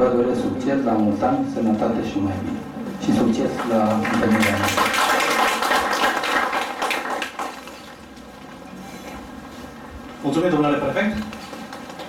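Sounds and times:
audience applause: 0:03.6 - 0:07.8.

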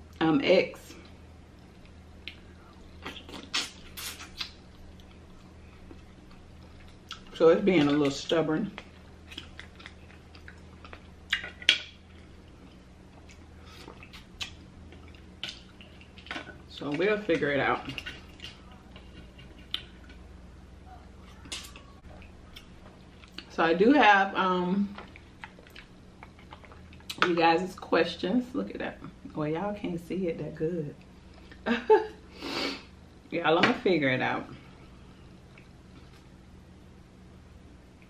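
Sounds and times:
steady low hum: 0:00.0 - 0:38.0
chewing mussels: 0:01.0 - 0:23.5, 0:24.8 - 0:27.3.

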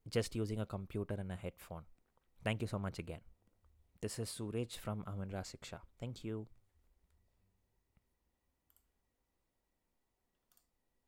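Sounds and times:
computer mouse clicks: 0:08.7 - 0:08.9, 0:10.5 - 0:10.7.

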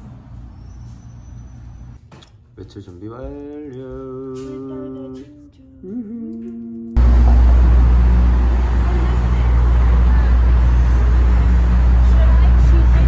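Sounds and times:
street traffic rumble: 0:00.0 - 0:02.0, 0:07.0 - 0:13.0.

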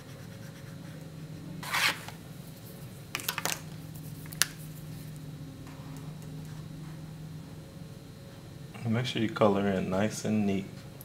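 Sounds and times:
marker scratching on paper: 0:00.0 - 0:01.0
steady low hum: 0:00.0 - 0:11.0.

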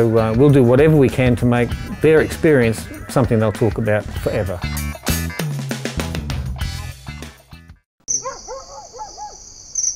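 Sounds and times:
background music: 0:00.0 - 0:07.8
animal calls: 0:08.1 - 0:09.9
insect chirring: 0:08.1 - 0:09.9.

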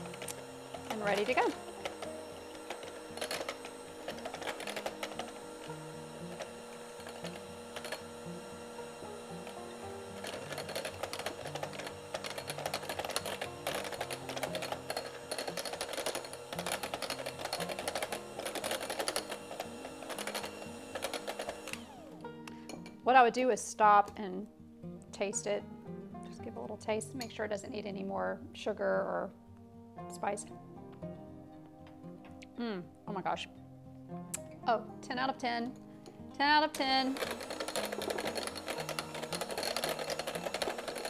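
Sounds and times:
electric hand mixer running: 0:00.0 - 0:22.9, 0:36.7 - 0:41.0
background music: 0:00.0 - 0:41.0.

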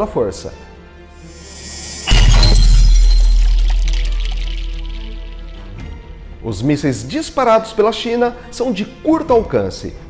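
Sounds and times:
high shimmer: 0:01.2 - 0:05.8
loud hit with deep bass boom: 0:01.3 - 0:05.8.

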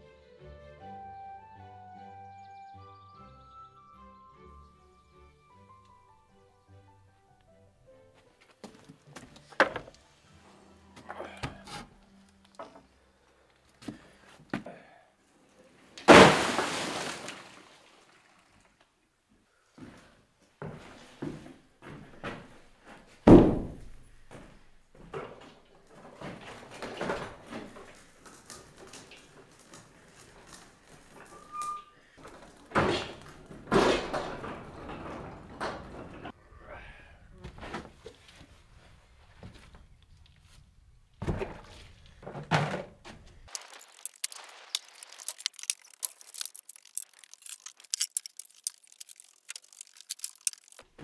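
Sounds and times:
small clatters: 0:43.5 - 0:51.0.

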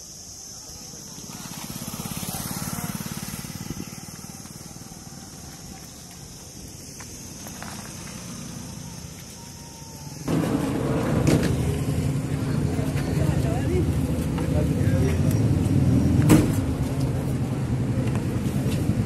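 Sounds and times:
people talking: 0:00.0 - 0:06.6, 0:11.3 - 0:15.5
vehicle engine idling: 0:00.1 - 0:19.0.

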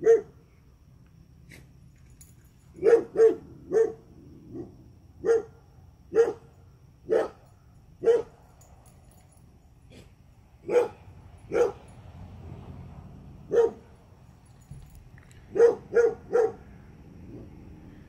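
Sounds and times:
dog barking: 0:00.0 - 0:00.4, 0:02.8 - 0:06.5, 0:07.1 - 0:07.4, 0:08.0 - 0:08.4, 0:09.9 - 0:11.8, 0:13.5 - 0:13.9, 0:15.5 - 0:16.7.

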